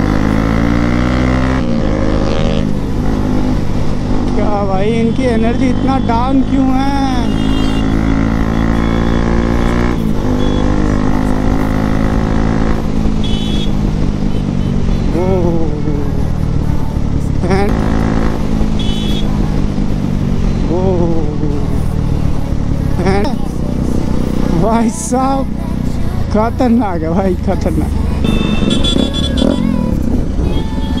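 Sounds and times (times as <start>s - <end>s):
motorcycle engine running: 0.0s - 31.0s.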